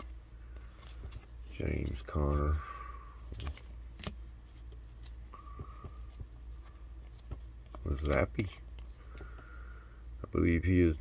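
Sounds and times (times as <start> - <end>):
cardboard cards clicking and sliding: 0.0 - 9.4
steady low hum: 0.0 - 11.0.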